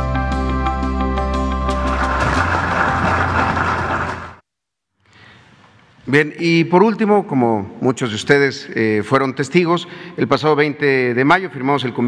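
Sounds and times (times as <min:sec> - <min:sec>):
background music: 0:00.0 - 0:04.4
crowd applauding: 0:01.6 - 0:04.4.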